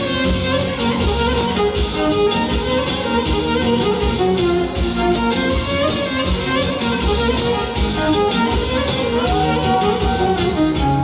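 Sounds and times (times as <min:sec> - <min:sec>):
folk dance music led by violin: 0:00.0 - 0:11.0.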